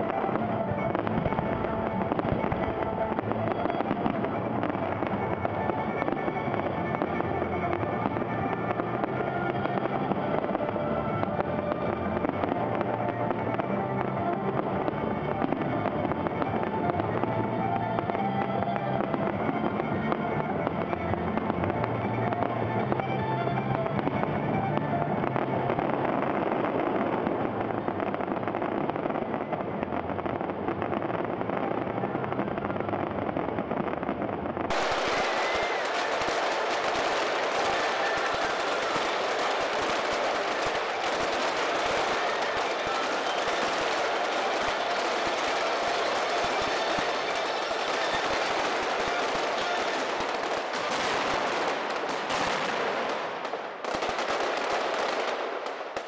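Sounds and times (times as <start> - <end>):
fireworks crackling: 0.0 - 56.0.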